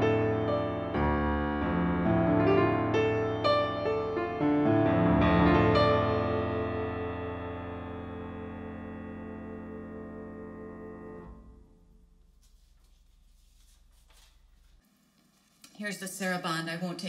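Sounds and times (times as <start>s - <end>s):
grand piano chord ringing: 0.0s - 12.3s
sheet music rustling: 10.8s - 16.5s.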